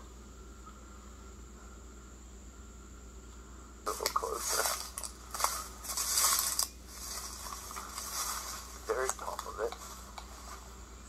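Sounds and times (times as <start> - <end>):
footsteps rustling through brush: 3.9 - 10.9.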